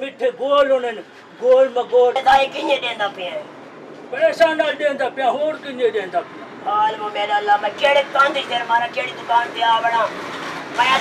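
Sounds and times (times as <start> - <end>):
man talking: 0.0 - 3.5, 4.1 - 10.1.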